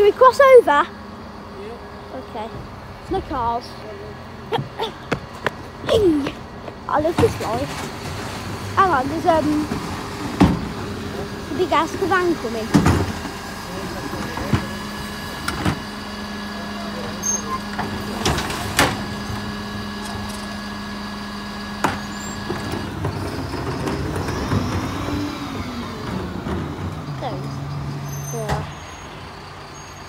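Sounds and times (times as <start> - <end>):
bin lorry engine humming: 0.0 - 30.0.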